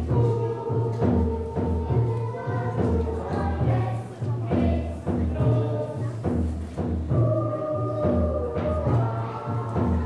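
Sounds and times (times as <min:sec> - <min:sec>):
group of voices singing: 0:00.0 - 0:10.0.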